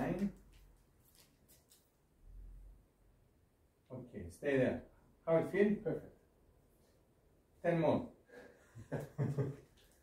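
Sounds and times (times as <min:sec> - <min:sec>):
man laughing: 0:08.6 - 0:09.7.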